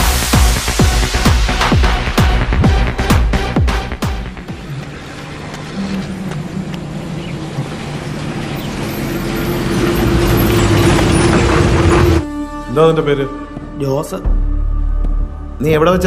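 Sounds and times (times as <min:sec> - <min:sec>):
low rumbling swell: 0:01.1 - 0:12.6.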